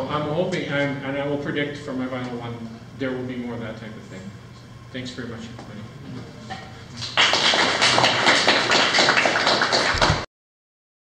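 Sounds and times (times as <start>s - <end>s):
audience applauding: 7.0s - 10.3s.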